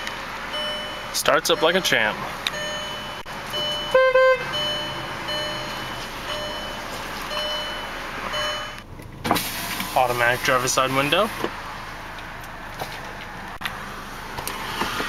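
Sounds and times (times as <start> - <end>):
high warning chime: 0.0 - 8.8
car engine idling: 0.0 - 15.0
car horn: 3.6 - 6.9.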